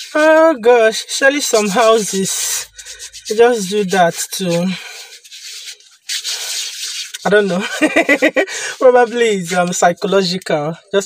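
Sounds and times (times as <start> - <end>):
hands rubbing together: 0.0 - 10.0.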